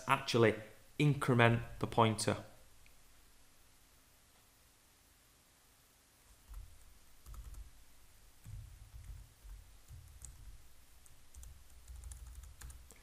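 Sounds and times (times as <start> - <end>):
typing on computer keyboard: 6.5 - 7.7, 8.4 - 13.0.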